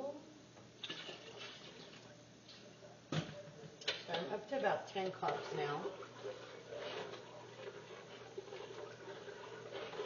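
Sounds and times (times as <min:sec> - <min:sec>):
liquid pouring into a pot: 0:05.0 - 0:10.0.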